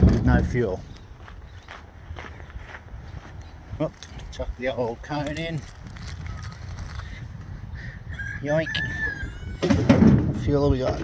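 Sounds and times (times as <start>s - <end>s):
distant bird calls: 0.7s - 3.8s.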